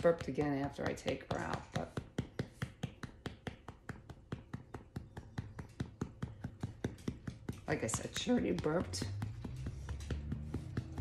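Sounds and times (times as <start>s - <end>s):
hand patting dog through blanket: 0.1s - 11.0s.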